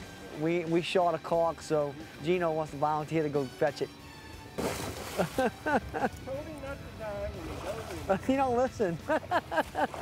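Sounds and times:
person jumping into water splash: 4.6s - 5.5s.

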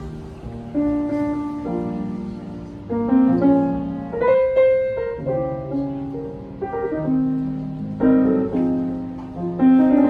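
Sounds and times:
grand piano playing: 0.0s - 10.0s.

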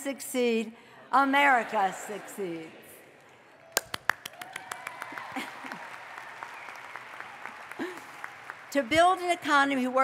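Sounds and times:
sharp hand claps: 3.7s - 9.0s
crowd applause: 3.7s - 9.5s.

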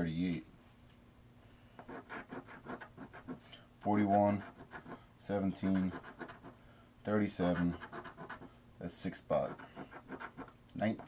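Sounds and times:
coin scratching lottery ticket: 1.9s - 3.4s, 4.0s - 5.0s, 5.6s - 6.5s, 7.4s - 8.5s, 9.4s - 11.0s.

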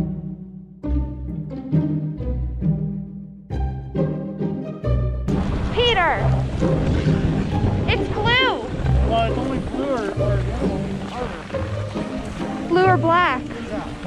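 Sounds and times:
wind on microphone: 5.3s - 14.0s
skis scraping on packed snow: 6.4s - 14.0s.

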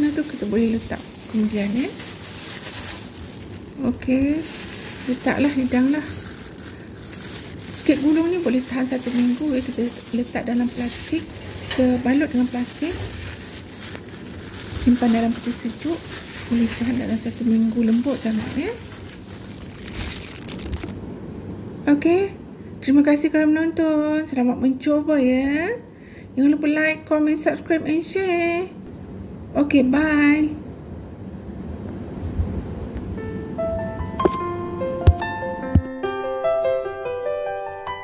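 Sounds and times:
plastic gloves crinkling: 0.0s - 21.0s
steady hiss: 0.0s - 21.0s
low rumbling microphone noise: 0.0s - 21.2s.

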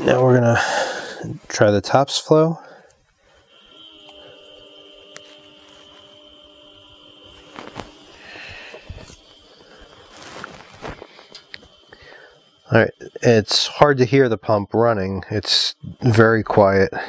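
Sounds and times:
pump whining: 0.0s - 13.8s.

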